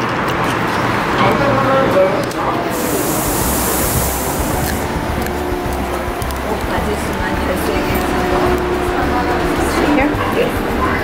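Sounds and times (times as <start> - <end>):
airy hiss: 2.7 - 6.9
train car rumble: 2.7 - 11.0.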